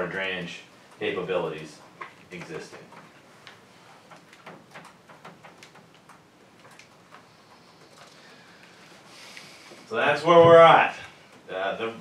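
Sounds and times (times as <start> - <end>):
low hiss: 0.0 - 12.0.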